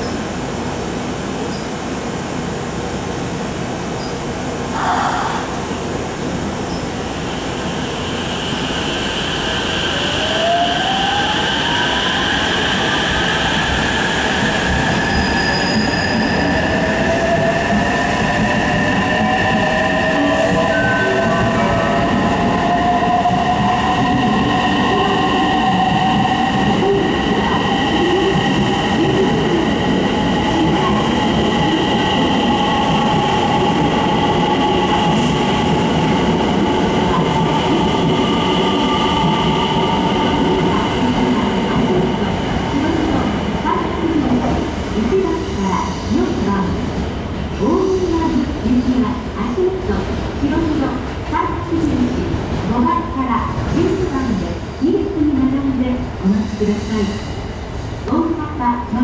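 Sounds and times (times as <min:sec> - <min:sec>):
train cars running on rails: 0:00.0 - 0:59.0.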